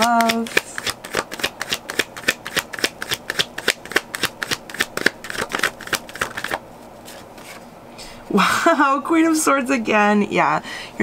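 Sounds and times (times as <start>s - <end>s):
cards being shuffled: 0.0s - 7.7s.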